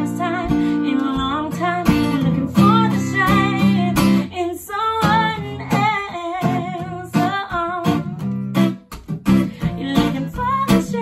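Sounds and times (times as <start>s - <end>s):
woman singing: 0.0s - 8.4s, 9.4s - 11.0s
acoustic guitar strumming: 0.0s - 11.0s.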